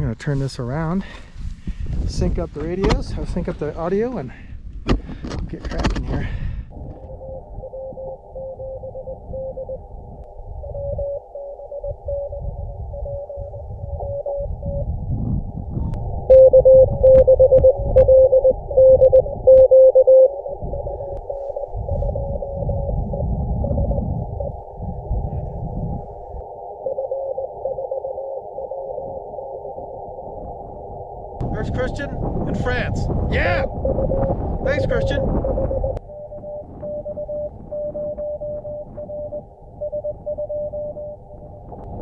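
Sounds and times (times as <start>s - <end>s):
low rumble: 6.5s - 42.0s
morse code beeping: 7.0s - 9.8s, 10.6s - 14.9s, 16.3s - 24.6s, 26.8s - 29.1s, 33.5s - 41.5s.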